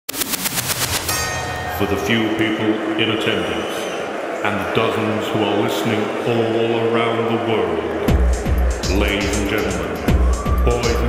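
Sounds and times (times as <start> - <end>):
bell struck rapidly: 0.6 - 2.6
low pulsing beat: 8.1 - 11.0.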